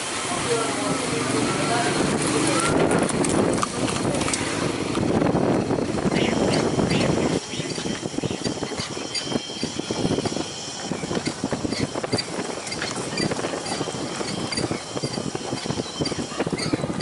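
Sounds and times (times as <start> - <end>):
vehicle rattling on dirt road: 0.0 - 17.0.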